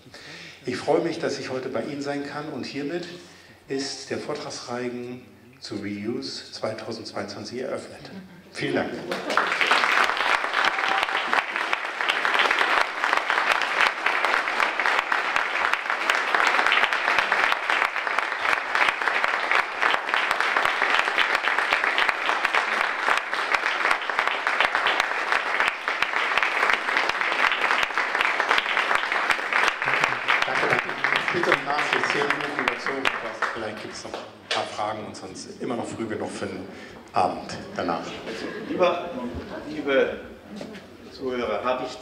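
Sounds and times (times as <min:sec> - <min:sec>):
audience clapping: 0:09.0 - 0:34.8.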